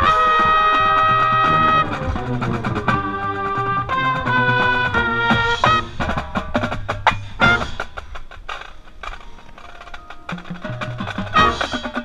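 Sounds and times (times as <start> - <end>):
marching band brass chord: 0.0 - 8.0, 11.3 - 12.0
sharp clicking percussion hits: 0.0 - 12.0.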